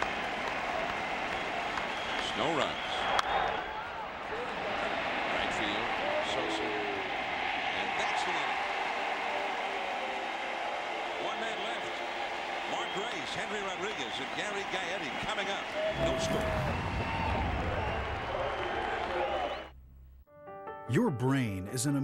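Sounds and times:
low rushing sound: 0:15.9 - 0:19.1.

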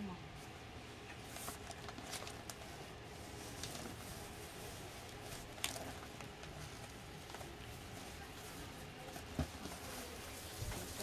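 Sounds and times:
ribbon and gift wrap rustling: 0:01.2 - 0:11.0.

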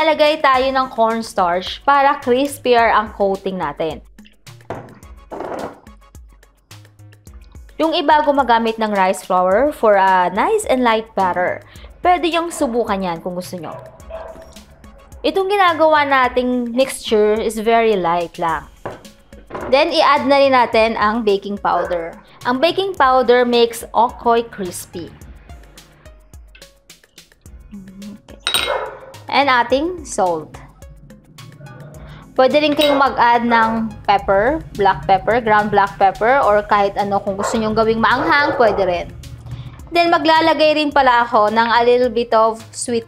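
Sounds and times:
light background music: 0:00.0 - 0:43.0.

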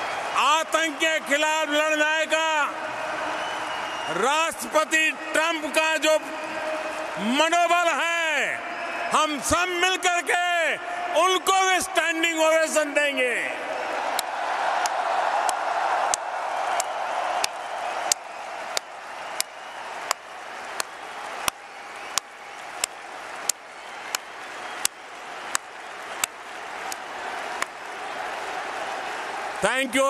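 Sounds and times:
stadium crowd cheering and applauding: 0:00.0 - 0:30.0
hands clapping close to microphone: 0:14.1 - 0:29.6.

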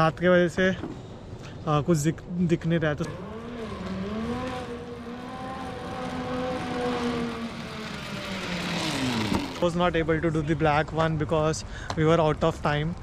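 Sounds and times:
zipline pulleys whirring on cable: 0:03.0 - 0:09.9.

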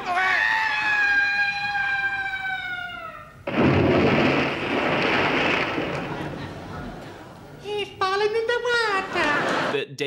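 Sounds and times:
loud water splash: 0:03.5 - 0:06.6.

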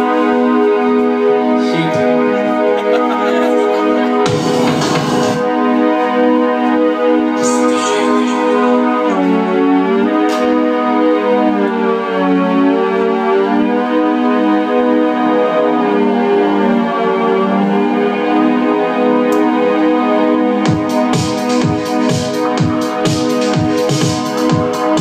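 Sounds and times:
synthesizer organ-like chords: 0:00.0 - 0:25.0.

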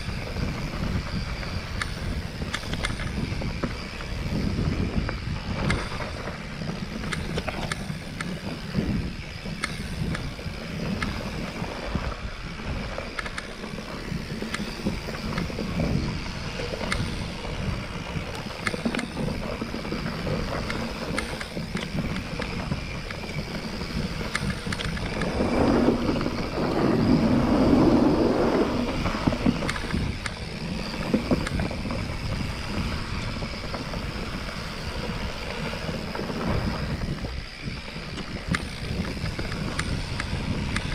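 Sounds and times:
bike clicks and rattles: 0:00.0 - 0:40.9
bike tyres rumbling on dirt: 0:00.0 - 0:40.9
wind on microphone: 0:00.0 - 0:40.9
rough rush of noise: 0:25.1 - 0:29.9.

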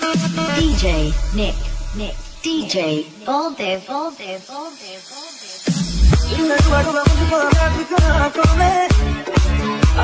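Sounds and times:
low held bass note: 0:00.6 - 0:02.5.

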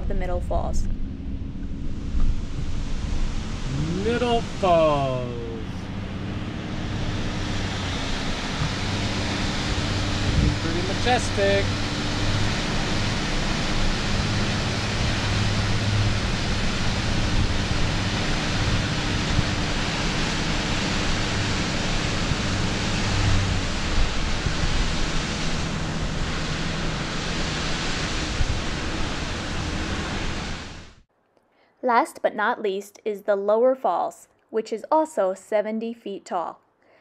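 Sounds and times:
waterfall roaring: 0:02.7 - 0:31.0.

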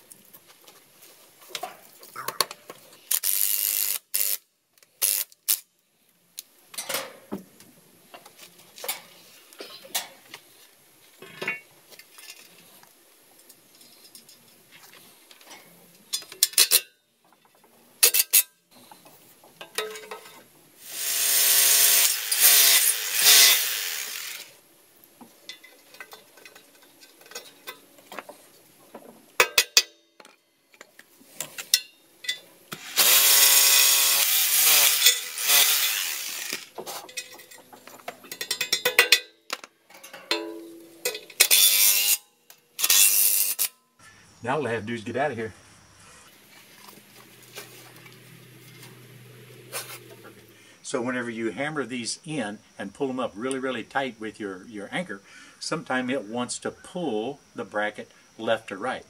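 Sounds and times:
cordless drill running: 0:20.9 - 0:24.5, 0:32.8 - 0:36.7.

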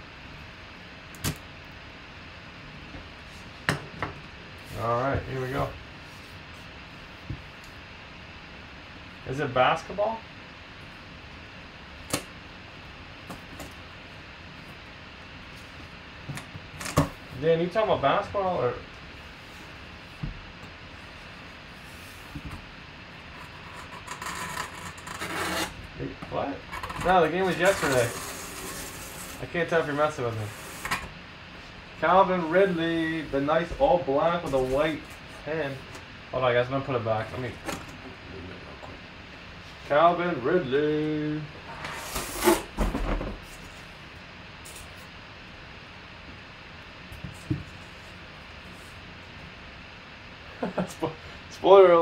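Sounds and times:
steady background hiss: 0:00.0 - 0:52.0
cardboard scraping against cardboard: 0:23.4 - 0:25.8, 0:26.9 - 0:31.0.

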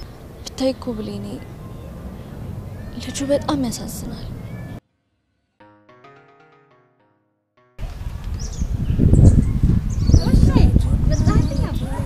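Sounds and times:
low rumbling street noise: 0:00.0 - 0:04.8.

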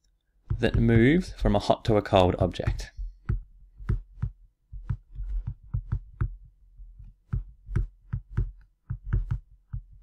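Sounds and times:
stylus tapping on tablet: 0:00.4 - 0:01.4, 0:03.0 - 0:10.0.

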